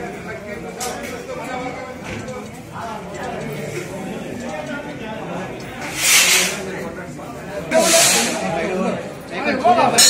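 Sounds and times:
murmur of crowd voices: 0.0 - 10.0
loud hisses: 7.7 - 8.5.

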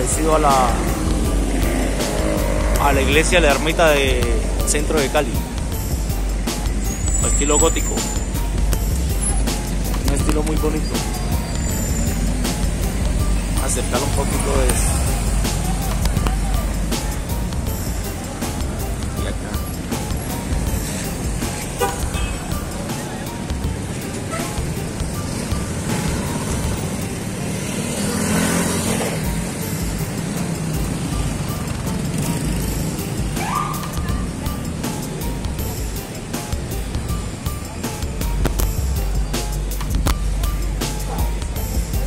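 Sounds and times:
cars and motorcycles passing: 0.0 - 42.0.

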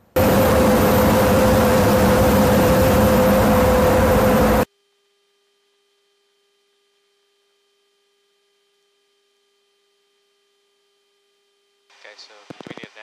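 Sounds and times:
jet engines roaring: 0.0 - 4.7
steady hum: 0.0 - 13.0.

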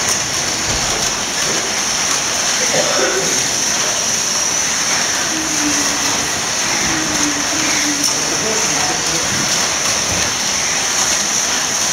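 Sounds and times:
slot cars rushing hiss: 0.0 - 11.9
faint voices: 2.6 - 4.2, 4.9 - 10.4.

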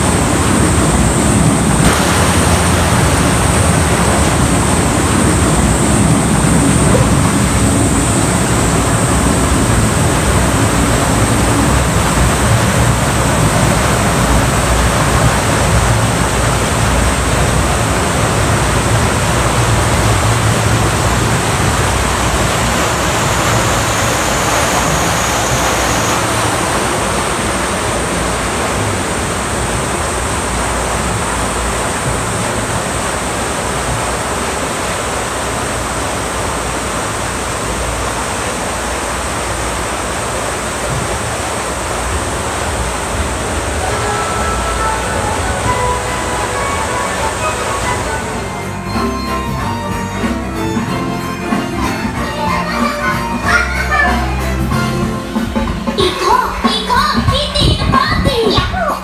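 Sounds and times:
water rushing through a channel: 0.0 - 59.0.

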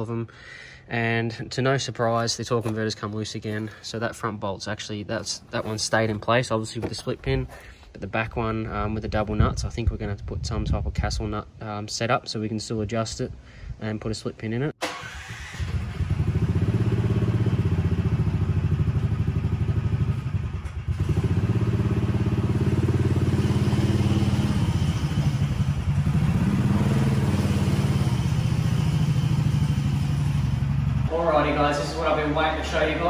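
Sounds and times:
golf cart engine running: 15.0 - 33.0.

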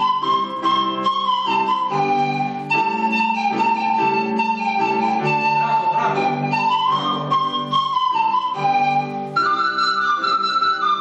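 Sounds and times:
electronic keyboard chords: 0.0 - 11.0
pan flutes playing melody: 0.0 - 11.0.

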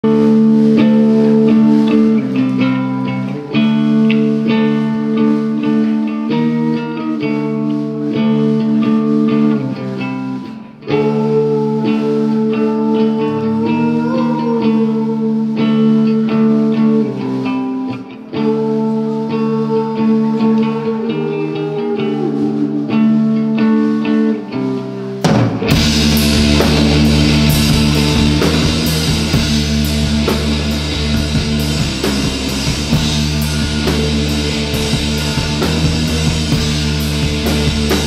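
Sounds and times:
distorted electric guitar chords: 0.0 - 38.0
live rock band playing: 0.0 - 38.0.

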